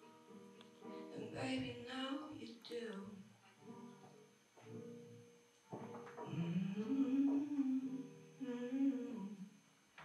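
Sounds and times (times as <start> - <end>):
acoustic guitar: 0.0 - 10.0
woman singing softly: 1.1 - 3.3, 6.2 - 9.5.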